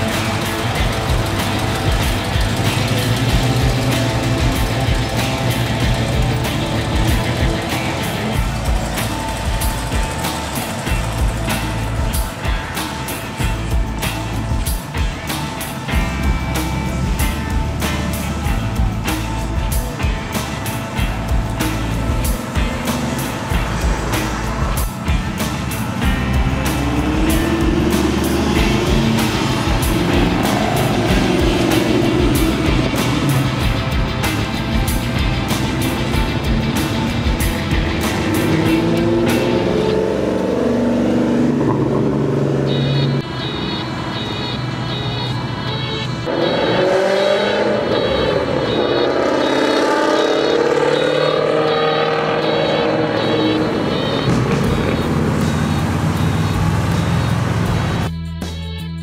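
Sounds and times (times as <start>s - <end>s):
car engines accelerating: 0.0s - 58.1s.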